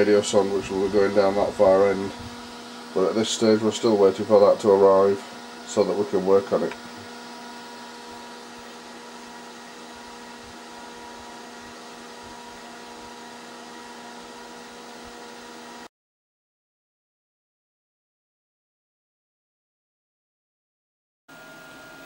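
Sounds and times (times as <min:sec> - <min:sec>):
computer fan humming: 0:00.0 - 0:15.9.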